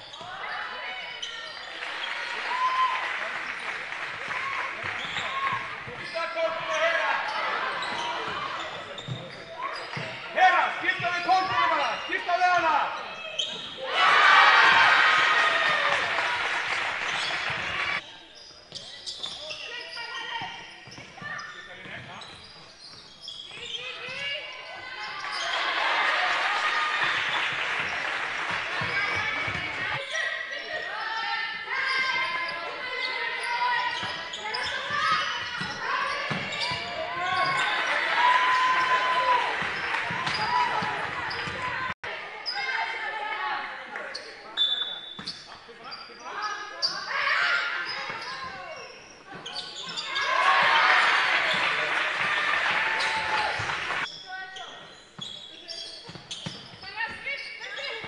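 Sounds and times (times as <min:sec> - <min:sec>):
shoes squeaking on court: 0:00.0 - 0:02.8, 0:03.4 - 0:13.9, 0:15.1 - 0:42.9, 0:44.1 - 0:58.0
players calling out: 0:00.1 - 0:18.5.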